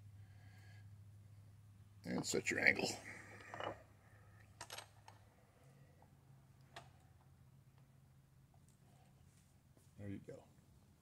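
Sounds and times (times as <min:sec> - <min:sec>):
low steady hum: 0:00.0 - 0:11.0
metal-on-metal clicks: 0:04.5 - 0:05.2.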